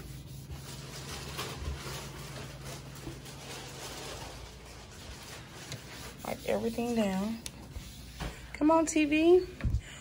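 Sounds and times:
wipe rubbing on hard surfaces: 0.0 - 8.8.

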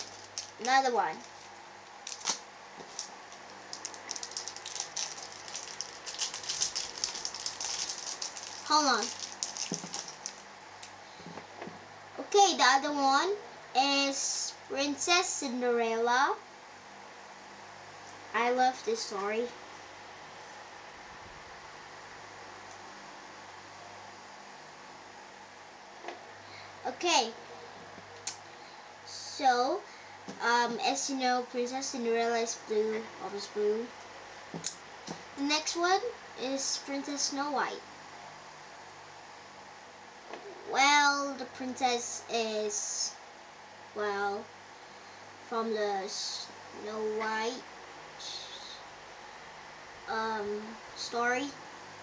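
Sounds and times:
plastic packaging crinkling: 0.0 - 11.0
background hiss: 0.0 - 52.0
faint low hum: 0.0 - 52.0.

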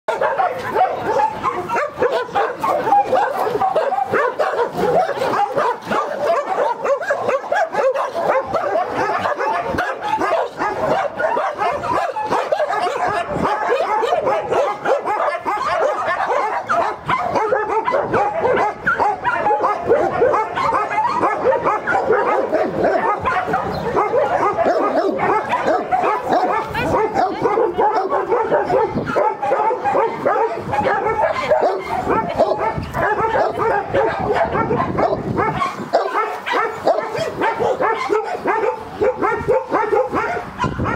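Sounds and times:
dogs barking and yipping: 0.1 - 40.9.

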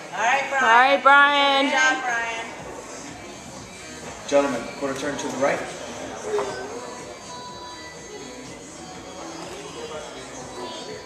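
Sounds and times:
background music: 0.0 - 11.0
faint voices: 1.9 - 11.0.

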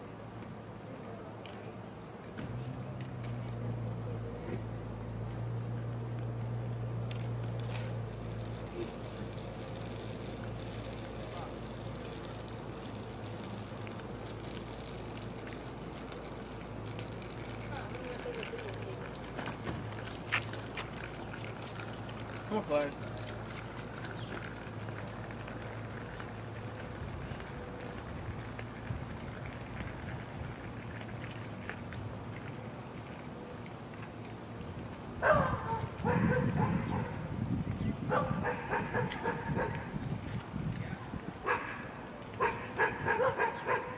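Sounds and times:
dog barking: 35.2 - 37.2, 38.1 - 39.9, 41.4 - 43.9.

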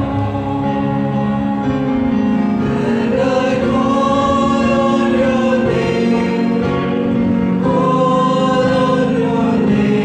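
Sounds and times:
choir singing a worship song: 0.0 - 10.0.

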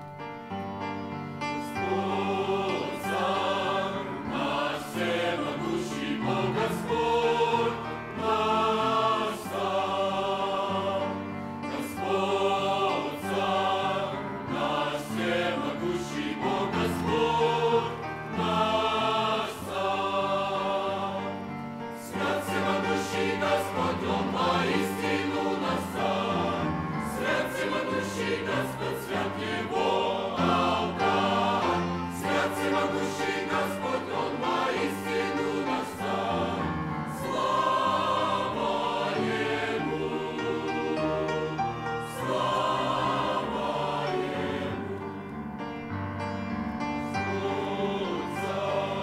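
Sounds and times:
choir singing a hymn: 0.0 - 49.0.

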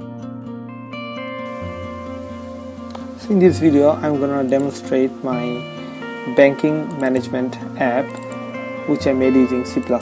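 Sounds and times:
soft plucked string music: 0.0 - 10.0
faint hiss: 1.5 - 10.0.

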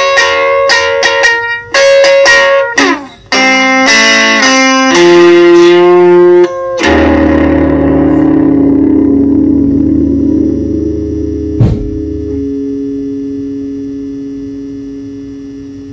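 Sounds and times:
guitar chord ringing out: 0.0 - 15.9
short thump: 11.6 - 12.2.

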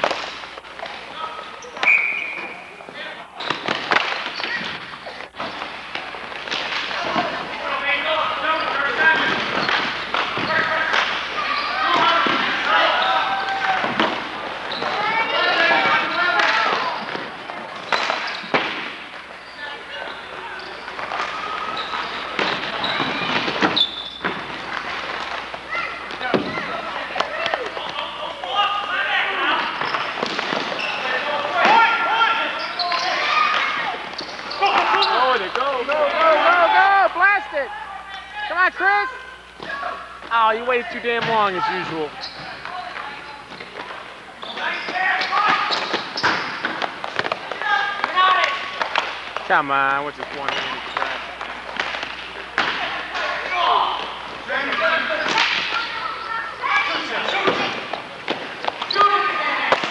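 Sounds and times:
people shouting and talking: 0.0 - 59.9.

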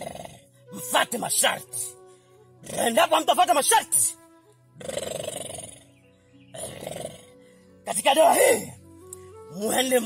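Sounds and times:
person growling grunt: 0.0 - 0.4
background music: 0.0 - 10.0.

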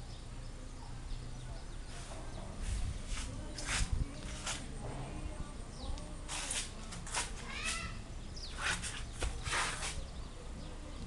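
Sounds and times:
scuffing noises: 1.9 - 4.8, 6.2 - 10.1.

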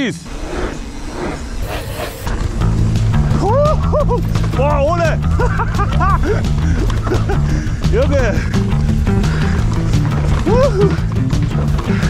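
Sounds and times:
steady rushing noise: 0.0 - 12.0
guitar-led background music: 2.4 - 12.0.

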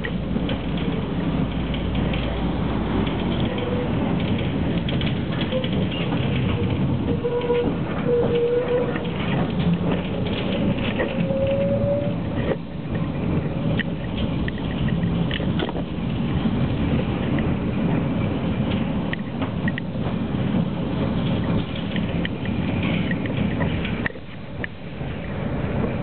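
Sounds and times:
rattles and clicks: 0.0 - 26.0
tram rumbling on tracks: 0.0 - 26.0.

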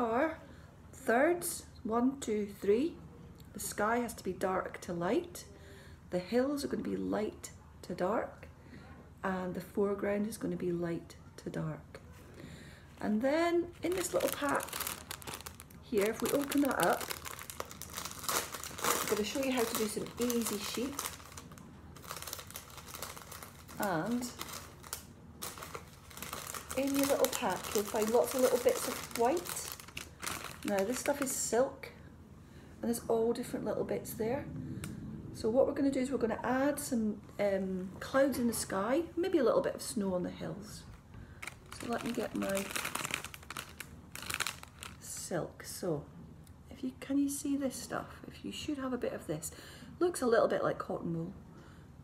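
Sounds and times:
packet crinkling: 13.7 - 31.5, 41.4 - 45.2.

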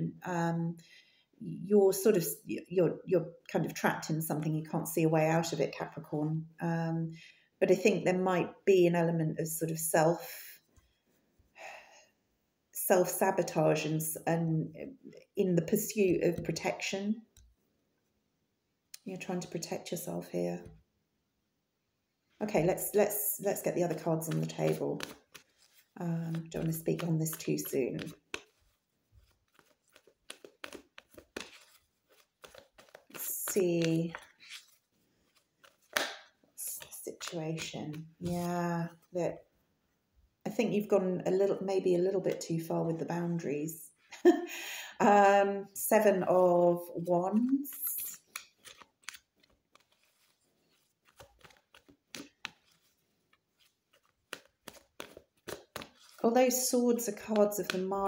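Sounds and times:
cards being shuffled: 22.6 - 39.1, 47.3 - 56.2, 57.4 - 57.9.

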